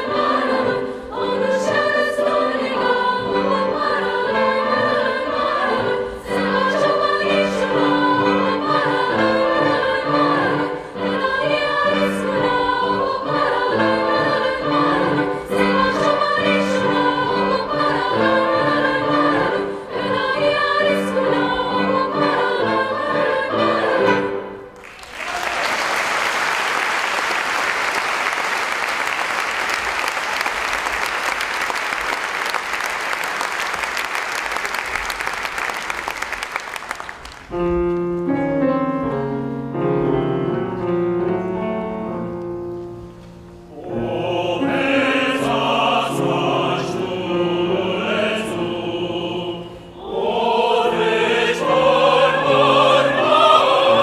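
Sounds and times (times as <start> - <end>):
girls' choir singing: 0.0 - 24.8, 43.7 - 54.0
audience applause: 24.8 - 37.5.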